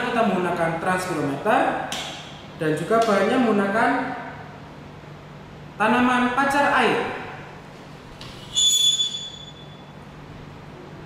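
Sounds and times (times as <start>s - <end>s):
high-pitched squeak: 8.4s - 9.9s.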